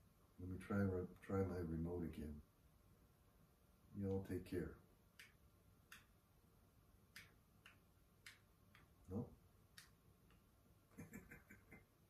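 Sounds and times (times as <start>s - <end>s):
remote buttons clicking: 7.1s - 9.0s
soft chuckle: 10.9s - 12.0s.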